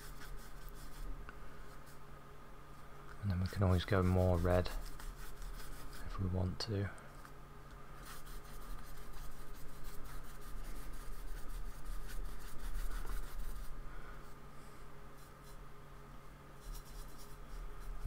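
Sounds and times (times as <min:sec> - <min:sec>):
paintbrush scratching on paper: 0:00.0 - 0:01.1, 0:03.5 - 0:06.2, 0:08.0 - 0:13.8, 0:15.2 - 0:15.6, 0:16.6 - 0:18.0
steady low hum: 0:00.0 - 0:18.0.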